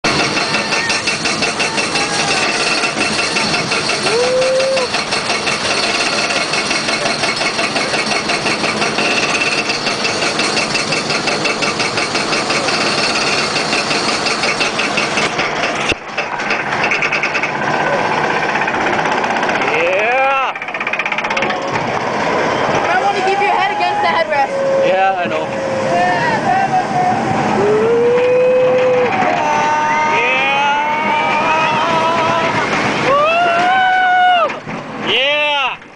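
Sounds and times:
roller coaster lift chain clattering: 0:00.0 - 0:35.9
rushing track noise: 0:00.0 - 0:35.9
rider whooping: 0:03.8 - 0:05.1, 0:25.6 - 0:35.8.

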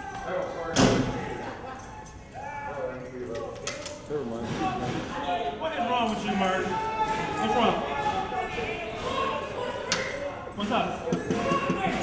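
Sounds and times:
muffled voices calling out: 0:00.0 - 0:12.0.

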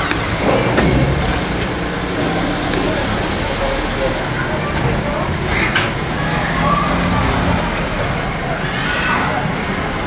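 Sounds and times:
engine running low rumble: 0:00.0 - 0:08.7
faint voices: 0:00.2 - 0:10.0.

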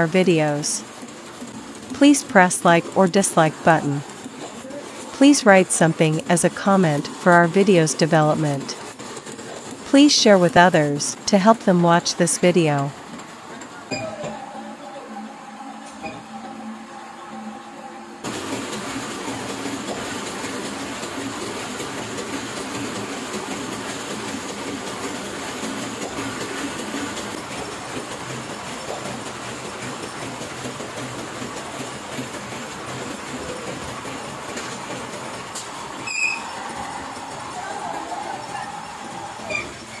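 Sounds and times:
printing press clattering: 0:00.0 - 0:40.0.

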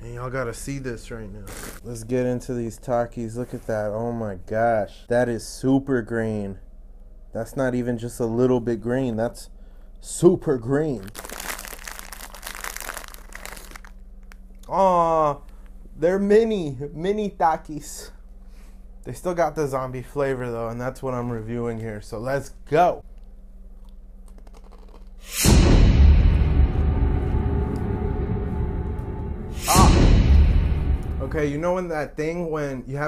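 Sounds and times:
foil snack bag crinkling: 0:10.8 - 0:14.4
chip crunching while chewed: 0:11.0 - 0:14.4, 0:23.8 - 0:25.2
downward whoosh: 0:25.3 - 0:31.9
low scary music sting: 0:25.3 - 0:31.9.

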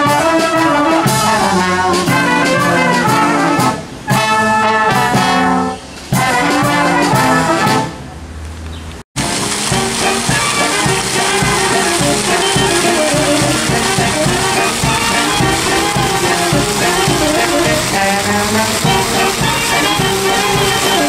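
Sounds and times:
steady drum beat: 0:00.0 - 0:05.4, 0:09.2 - 0:21.0
brass band playing: 0:00.0 - 0:08.1, 0:09.2 - 0:21.0.

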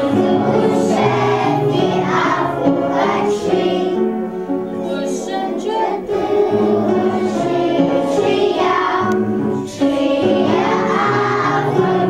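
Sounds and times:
children and women singing: 0:00.0 - 0:04.1, 0:05.0 - 0:12.0.

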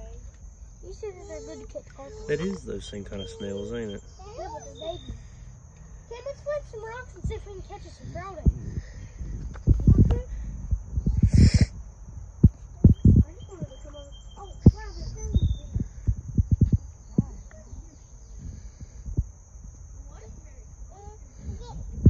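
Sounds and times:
children's wordless voices: 0:00.0 - 0:10.4, 0:12.8 - 0:16.1, 0:17.1 - 0:18.7, 0:20.0 - 0:21.9
steady high-pitched whine: 0:00.0 - 0:22.0.

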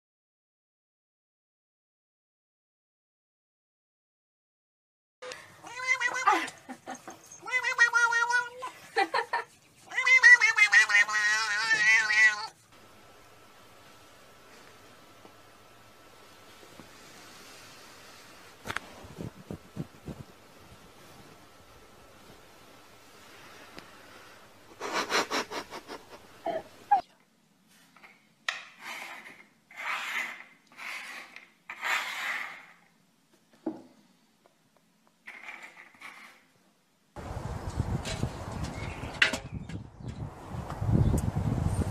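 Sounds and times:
cat meowing: 0:05.6 - 0:06.5, 0:07.3 - 0:08.7, 0:09.9 - 0:12.6
objects scraping on wooden tabletop: 0:28.0 - 0:32.8, 0:35.3 - 0:36.5.

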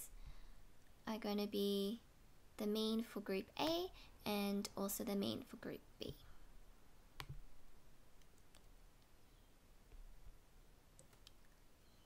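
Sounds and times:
computer mouse clicks: 0:11.0 - 0:11.6.

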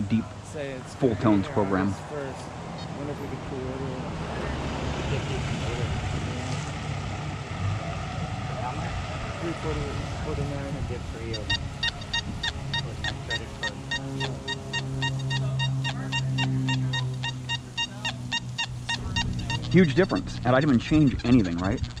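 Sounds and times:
steady low drone: 0:00.0 - 0:22.0.

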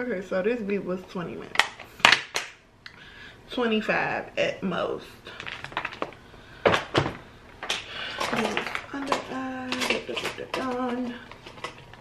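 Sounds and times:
makeup containers clicking: 0:07.7 - 0:11.8.

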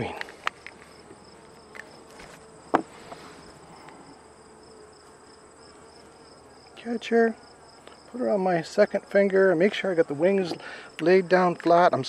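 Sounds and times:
high-pitched insect trill: 0:00.0 - 0:12.0
honeybees humming: 0:00.0 - 0:12.0.

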